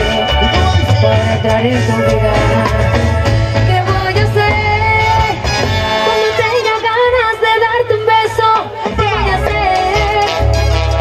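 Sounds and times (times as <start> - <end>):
lead vocal singing: 0.0 - 5.7
live dance band playing: 0.0 - 11.0.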